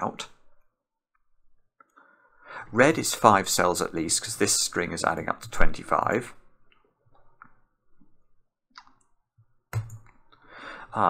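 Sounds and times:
computer mouse clicks: 0:09.8 - 0:10.2.

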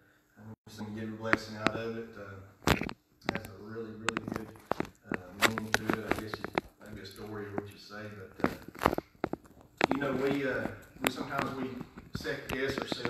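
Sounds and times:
man speaking into a microphone: 0:00.4 - 0:02.6, 0:03.2 - 0:08.8, 0:09.8 - 0:13.0
paper rustling and clicks: 0:04.1 - 0:13.0.

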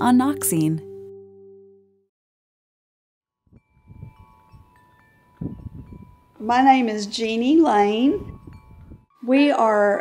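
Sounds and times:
metal wind chimes ringing: 0:03.6 - 0:10.0.

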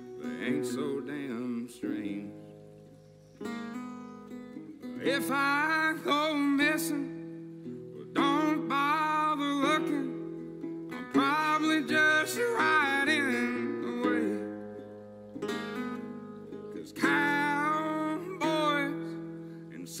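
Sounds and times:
man singing country song: 0:00.0 - 0:02.8, 0:04.5 - 0:20.0
strummed resonator guitar: 0:00.0 - 0:20.0.

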